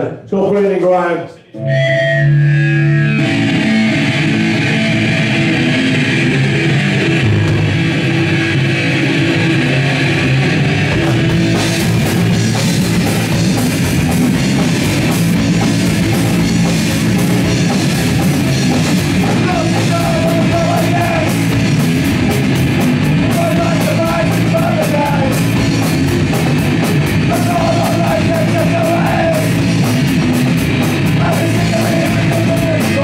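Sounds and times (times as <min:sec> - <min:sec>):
bass guitar: 0:01.5 - 0:33.0
distorted electric guitar: 0:01.5 - 0:33.0
drum kit: 0:01.6 - 0:33.0.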